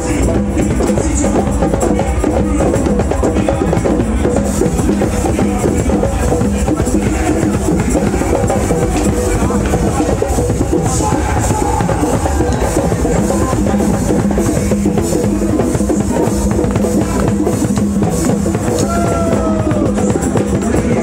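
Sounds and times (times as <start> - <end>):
loud drum and percussion music: 0.0 - 21.0.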